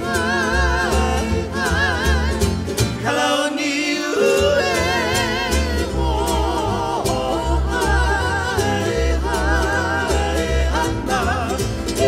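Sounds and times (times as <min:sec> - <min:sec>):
bass: 0:00.0 - 0:12.0
falsetto singing voice: 0:00.0 - 0:12.0
guitar accompaniment: 0:00.0 - 0:12.0.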